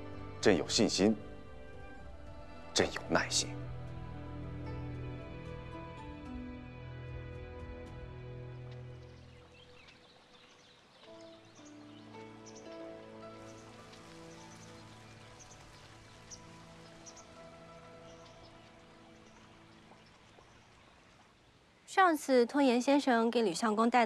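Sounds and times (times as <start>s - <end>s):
soft drama score music: 0.0s - 23.1s.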